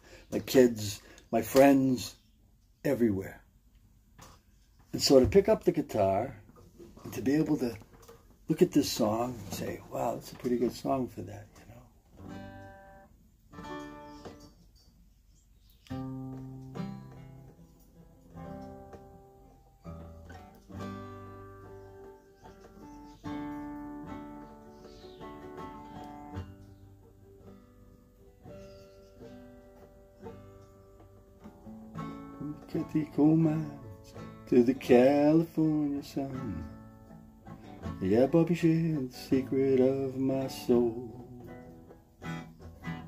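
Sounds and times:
acoustic guitar strumming: 0:05.0 - 0:11.4, 0:12.1 - 0:14.6, 0:15.9 - 0:43.0.

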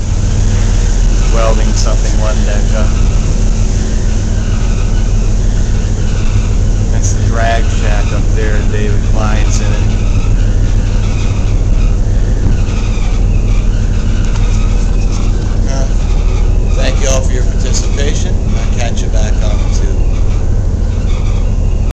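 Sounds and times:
machinery low drone: 0:00.0 - 0:21.9
faint voices: 0:01.2 - 0:03.6, 0:06.9 - 0:10.2, 0:14.2 - 0:20.1.

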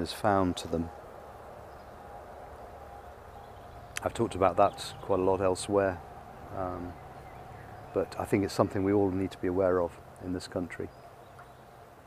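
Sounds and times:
faint bees flying: 0:00.0 - 0:12.0.

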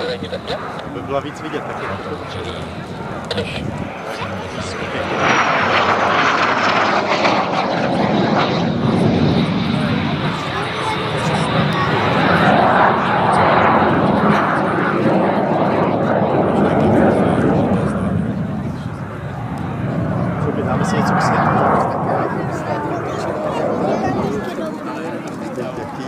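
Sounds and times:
jet engine roaring with whine: 0:00.0 - 0:26.0.

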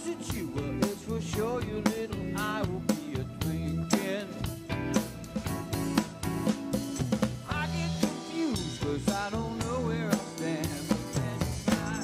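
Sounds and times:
bass guitar: 0:00.0 - 0:12.0
drum kit beats: 0:00.0 - 0:12.0.

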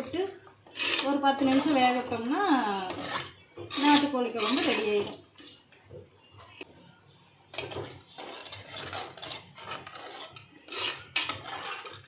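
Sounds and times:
ladle scraping a clay pot: 0:00.0 - 0:06.6, 0:07.5 - 0:12.0.

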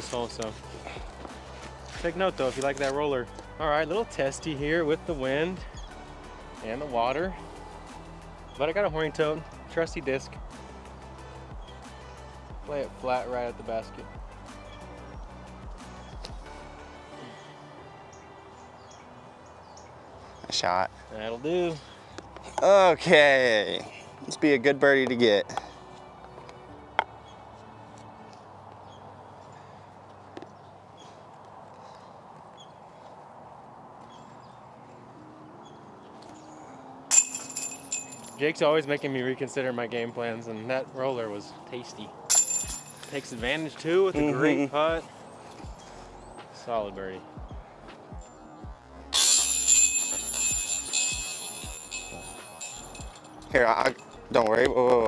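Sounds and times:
soft background music: 0:00.0 - 0:55.0
disc striking basket chains: 0:37.1 - 0:38.6, 0:42.3 - 0:43.7, 0:49.1 - 0:54.9.

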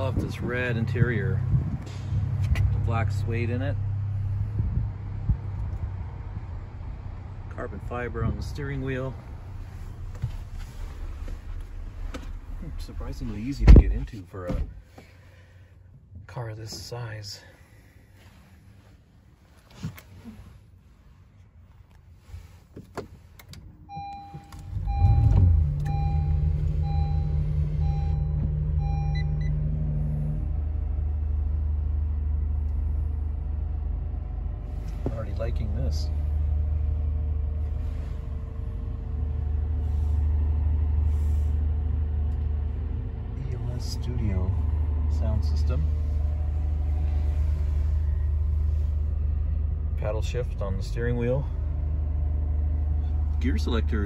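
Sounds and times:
car engine starting and idling: 0:00.0 - 0:54.0.

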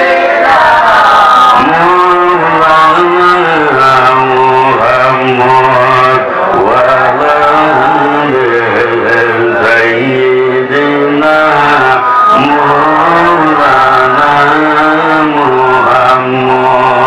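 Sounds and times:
man singing a devotional chant: 0:01.2 - 0:17.0.

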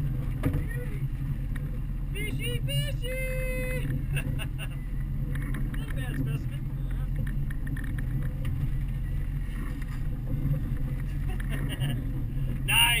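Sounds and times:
outboard motors running: 0:00.0 - 0:13.0
water washing at stern: 0:00.0 - 0:13.0.

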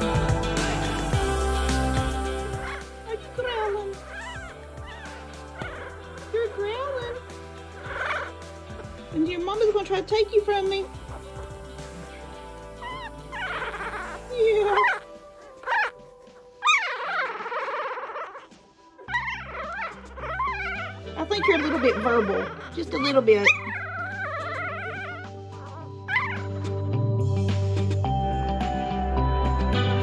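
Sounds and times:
background music: 0:00.0 - 0:30.0
puppy squeaking: 0:02.6 - 0:09.9, 0:12.8 - 0:16.0, 0:16.6 - 0:26.8.

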